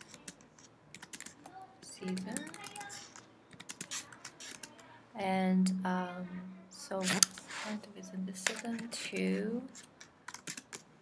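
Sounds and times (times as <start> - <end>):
computer keyboard typing: 0.0 - 4.8, 9.8 - 10.9.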